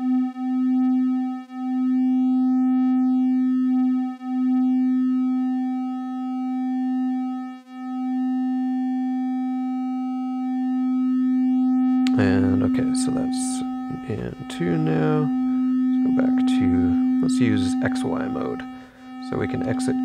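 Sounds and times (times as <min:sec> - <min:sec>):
oscillators beating triangle waves: 0:11.2 - 0:20.0.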